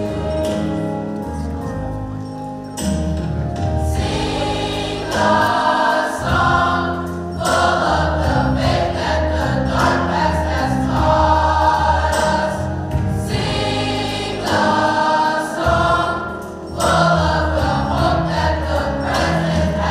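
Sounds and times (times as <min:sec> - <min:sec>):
choir singing gospel song: 0:00.0 - 0:00.9, 0:03.8 - 0:19.9.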